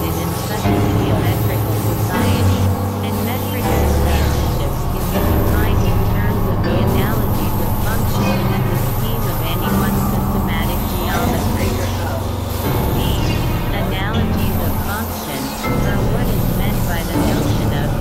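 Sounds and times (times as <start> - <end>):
dense noisy texture: 0.0 - 18.0
high chirping synth sweeps: 0.0 - 18.0
synthesizer drones: 0.0 - 18.0.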